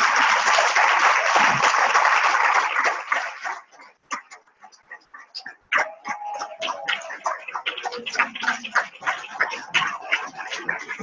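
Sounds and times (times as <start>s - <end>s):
audience applause: 0.0s - 3.9s, 5.8s - 11.0s.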